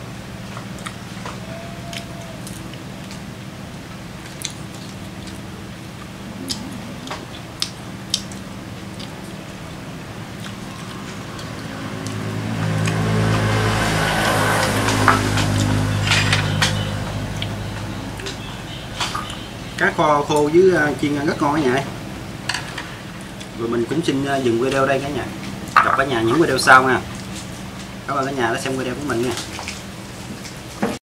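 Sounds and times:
deep loud hum: 0.0 - 31.0
steady low hum: 0.0 - 31.0.

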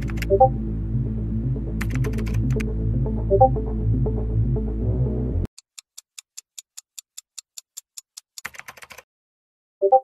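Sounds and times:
computer keyboard typing: 0.0 - 0.5, 1.8 - 2.6, 5.6 - 9.1.

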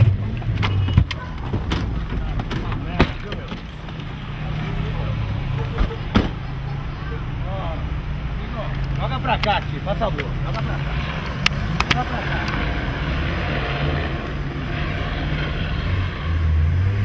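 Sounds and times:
car engine running: 0.0 - 17.0
faint voices: 0.9 - 14.5.

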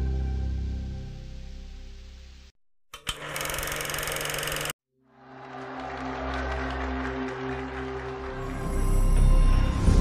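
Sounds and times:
fast mechanical clatter: 3.0 - 4.8
background music with low tones: 5.1 - 10.0.

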